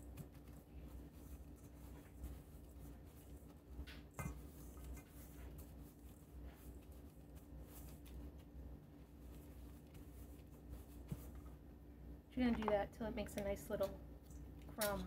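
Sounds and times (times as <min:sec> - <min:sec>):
butter squishing in mixing bowl: 0:00.0 - 0:15.0
low steady hum: 0:00.0 - 0:15.0.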